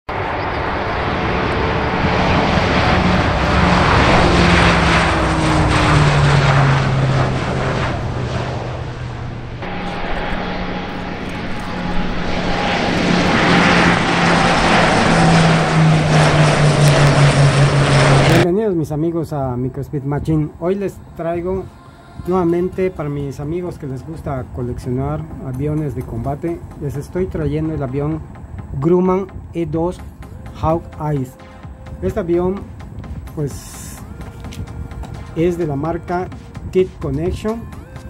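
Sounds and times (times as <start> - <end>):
loud rushing noise: 0.1 - 18.5
turboprop aircraft taking off: 0.1 - 38.0.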